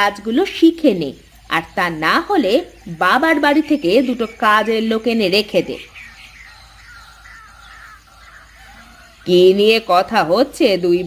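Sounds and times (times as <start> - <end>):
faint crows cawing: 5.8 - 9.9.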